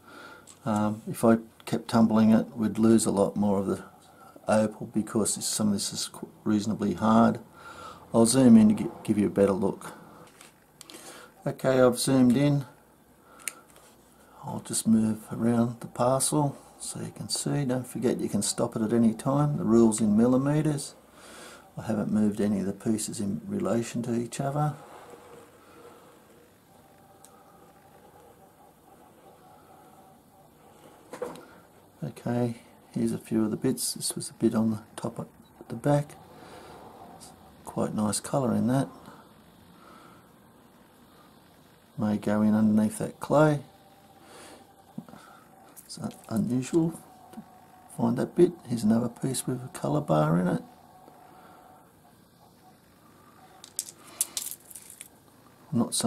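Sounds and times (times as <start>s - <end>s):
faint steady hum: 0.0s - 56.0s
stones clicking together: 53.6s - 55.1s.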